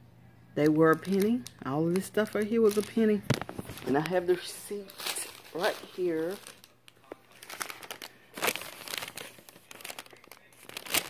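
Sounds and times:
packaging crinkling and rustling: 0:00.8 - 0:11.0.

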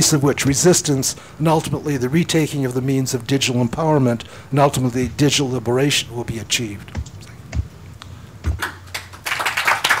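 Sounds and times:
low thump: 0:06.9 - 0:07.8, 0:08.4 - 0:08.6
audience applause: 0:08.6 - 0:10.0.

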